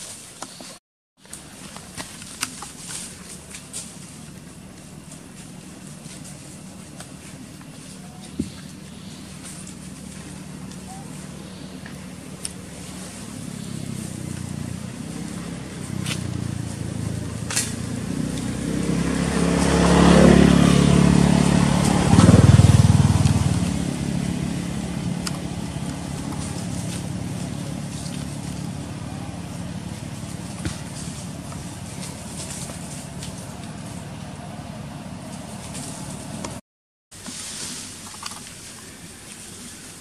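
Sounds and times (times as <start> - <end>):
vehicle engine passing by: 2.9 - 36.6.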